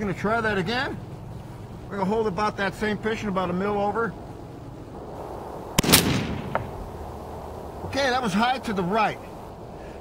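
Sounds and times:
rifle shot with echo: 5.8s - 6.9s.

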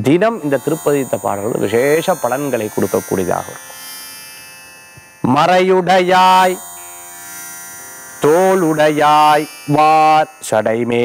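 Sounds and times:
man speaking: 0.0s - 3.6s, 8.2s - 11.0s.

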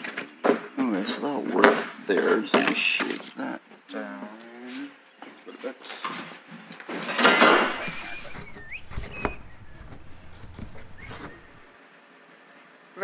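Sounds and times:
handling noises: 6.1s - 11.7s
foam scraping squeak: 7.0s - 11.7s
sharp knocks: 7.3s - 11.7s.

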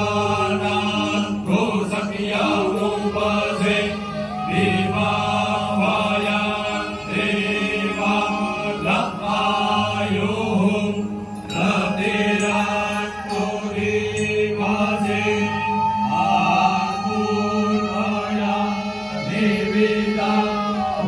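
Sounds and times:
group of men chanting: 0.0s - 21.0s.

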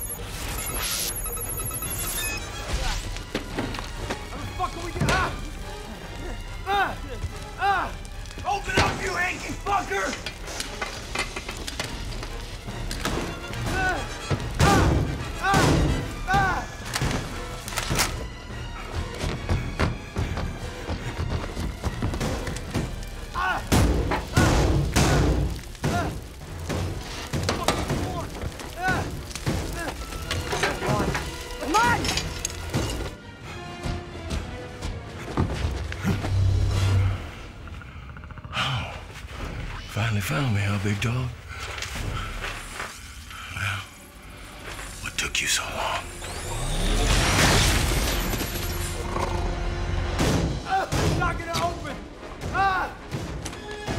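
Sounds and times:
dramatic music score: 0.0s - 53.9s.

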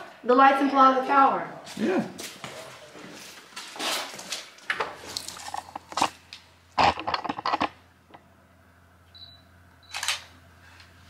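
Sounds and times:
sharp clicks and clatter: 6.8s - 7.8s.

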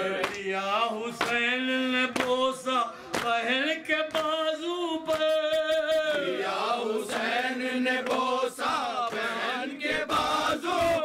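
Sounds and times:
man chanting a lament: 0.0s - 6.5s.

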